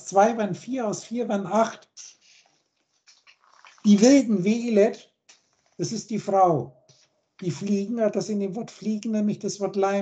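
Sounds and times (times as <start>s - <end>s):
person talking: 0.0s - 2.4s, 3.1s - 5.0s, 5.8s - 6.6s, 7.4s - 10.0s.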